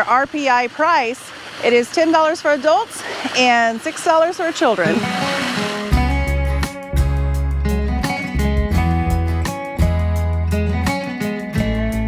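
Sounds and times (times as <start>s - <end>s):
guitar background music: 4.8s - 12.0s.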